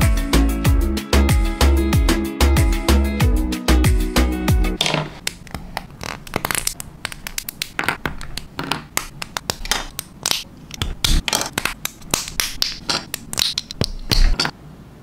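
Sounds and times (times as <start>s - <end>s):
plastic parts clicking and tapping: 4.8s - 14.5s
scratchy plastic rubs: 5.2s - 14.4s.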